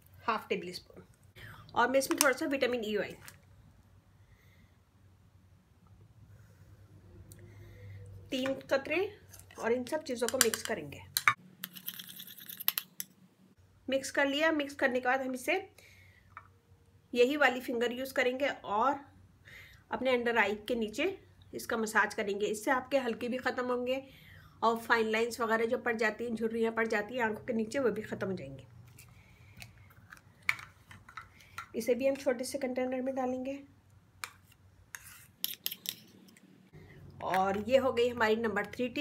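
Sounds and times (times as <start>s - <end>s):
metal spoon clicking in ceramic bowl: 10.2s - 13.1s
spoon scraping ceramic bowl: 11.6s - 13.0s, 34.3s - 36.4s.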